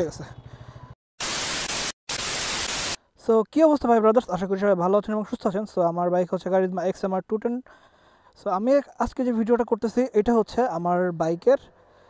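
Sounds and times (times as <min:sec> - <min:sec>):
television static hiss: 0:01.2 - 0:03.0.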